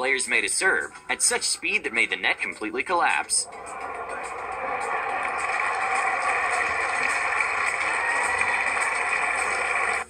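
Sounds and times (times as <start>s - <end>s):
television rushing noise: 3.4s - 10.0s.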